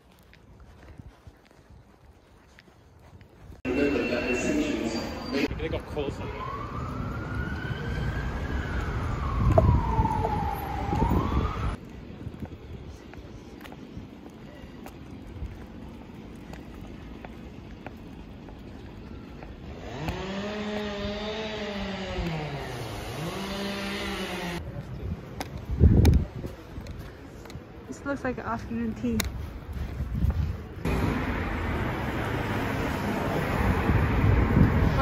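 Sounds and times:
street traffic: 0.0 - 35.0
siren wailing: 3.7 - 11.8.

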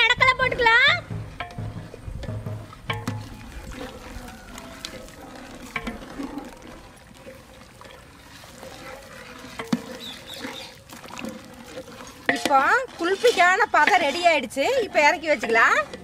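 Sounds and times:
liquid sloshing: 0.0 - 16.0
ladle clinking against pot: 12.2 - 14.4.

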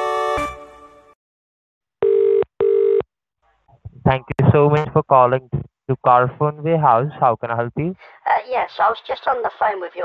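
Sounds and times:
telephone ringing tone: 2.0 - 3.0.

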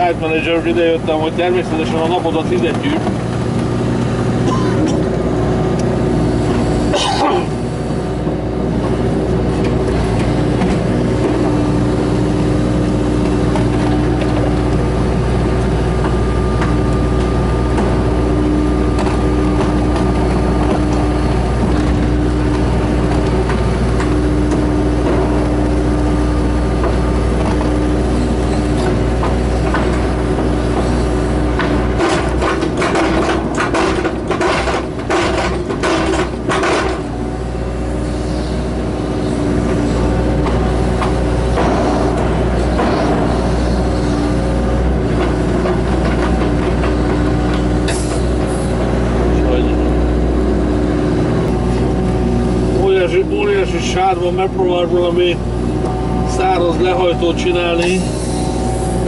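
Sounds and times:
excavator diesel engine running: 0.0 - 59.0
hydraulic whine: 0.0 - 59.0.

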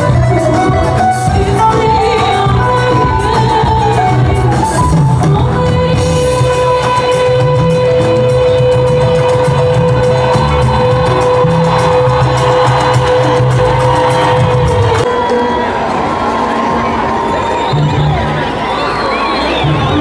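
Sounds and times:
crowd cheering and shouting: 0.0 - 20.0
live band music: 0.0 - 20.0.

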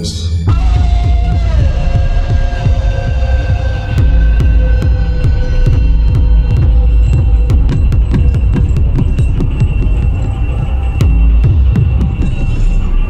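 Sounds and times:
pulsing bass: 0.0 - 13.0.

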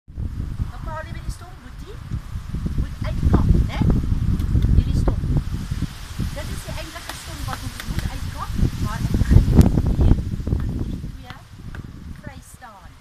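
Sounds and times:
person speaking: 2.8 - 4.0, 6.4 - 11.4.

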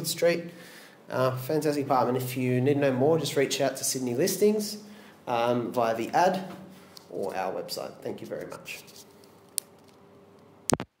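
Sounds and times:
faint steady hum: 0.0 - 10.9.

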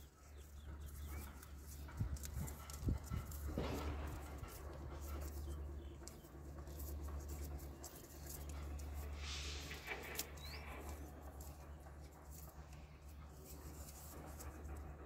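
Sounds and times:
steady low hum: 0.0 - 15.0
short rasp: 6.7 - 11.6.

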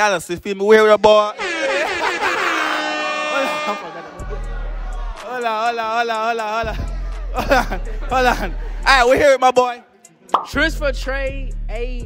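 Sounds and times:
people cheering and shouting: 1.3 - 9.1
air horn blast: 1.4 - 4.4.

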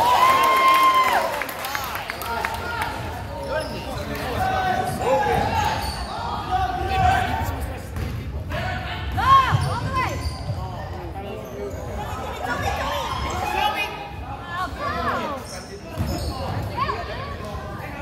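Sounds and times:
sneakers squeaking: 3.4 - 8.3, 9.0 - 13.5, 15.2 - 18.0.

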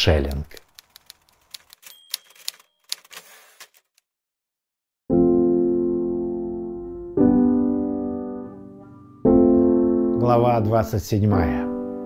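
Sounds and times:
typewriter keys clacking: 0.5 - 4.0
typewriter bell ringing: 1.7 - 3.2.

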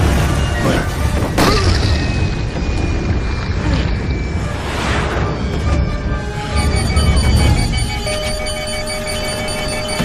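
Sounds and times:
steady warning tone: 2.3 - 10.0.

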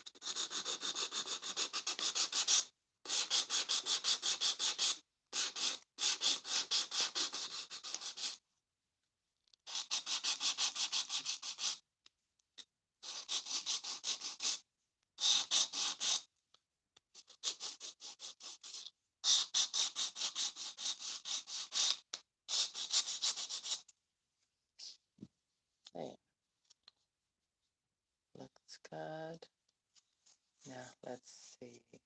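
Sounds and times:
sanding block scraping plastic: 0.1 - 8.4, 9.7 - 11.8, 13.0 - 14.6, 15.2 - 16.3, 17.2 - 23.9.

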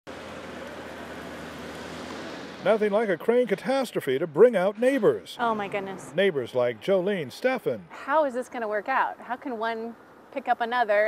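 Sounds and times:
outdoor noise: 0.0 - 11.0
vehicle engines on street: 0.0 - 11.0.

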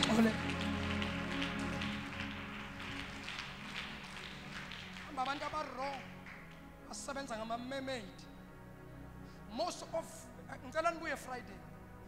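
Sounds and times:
held chords of music: 0.0 - 12.0.

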